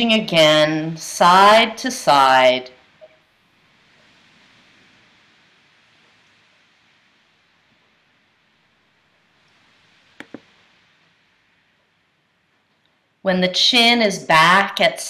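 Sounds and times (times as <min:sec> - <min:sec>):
faint soft hiss: 0:00.0 - 0:15.0.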